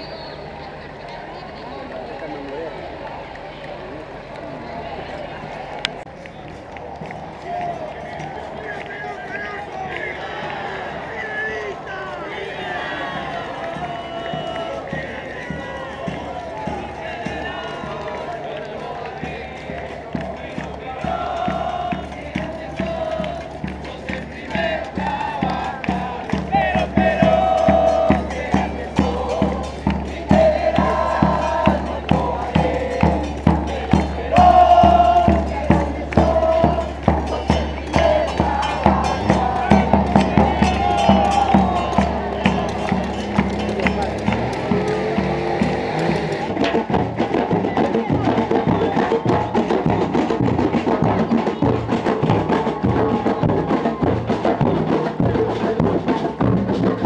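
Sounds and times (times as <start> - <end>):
crowd noise and voices: 0.0 - 57.0
crowd singing or chanting: 4.5 - 57.0
steady drum beat: 11.7 - 57.0.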